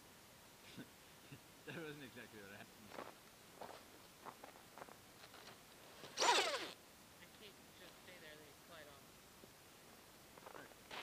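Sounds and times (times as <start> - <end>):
electric motor whirring: 6.2 - 6.8.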